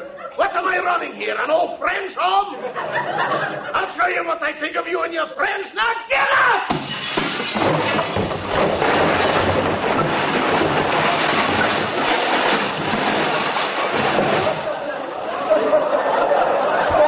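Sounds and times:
studio audience laughing: 2.6 - 3.8, 14.5 - 17.0
slapstick crash effect: 6.7 - 14.8.

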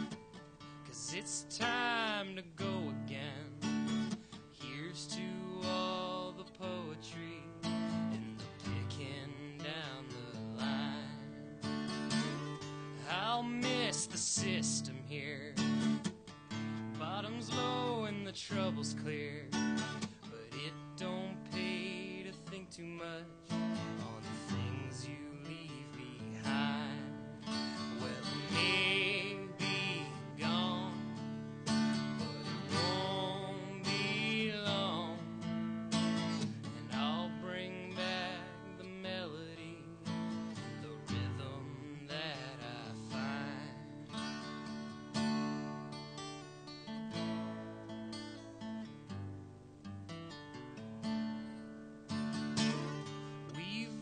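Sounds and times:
acoustic guitar playing: 0.0 - 54.0.

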